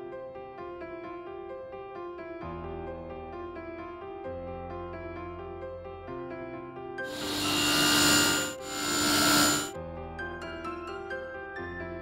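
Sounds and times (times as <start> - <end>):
soft piano music: 0.0 - 7.0, 9.8 - 12.0
table saw cutting wood: 7.1 - 9.8.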